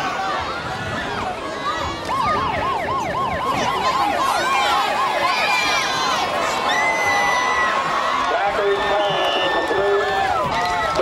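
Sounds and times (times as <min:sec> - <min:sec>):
crowd voices: 0:00.0 - 0:11.0
siren-like warbling tone: 0:02.1 - 0:06.8.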